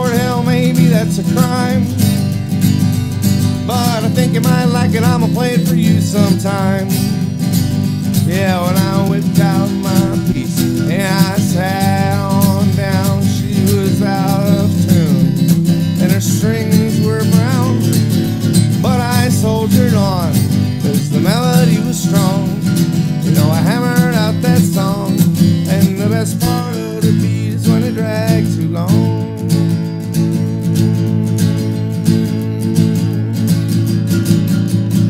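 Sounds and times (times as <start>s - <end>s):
harmonica melody: 0.0s - 34.5s
acoustic guitar strumming: 0.0s - 35.0s.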